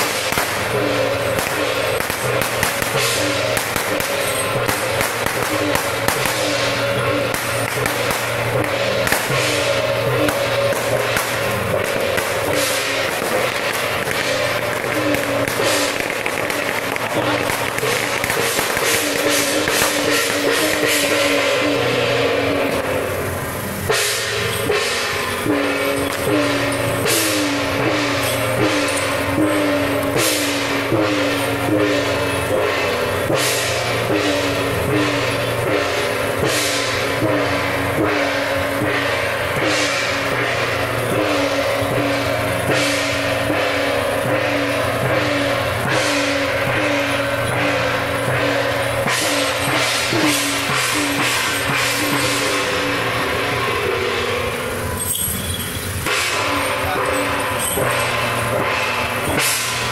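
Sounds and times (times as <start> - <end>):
cymbal crashes: 0.0 - 59.9
hand gongs struck in steady beat: 0.0 - 59.9.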